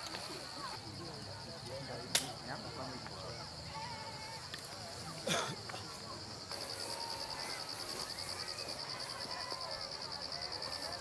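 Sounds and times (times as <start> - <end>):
sharp crack: 2.1 - 2.5.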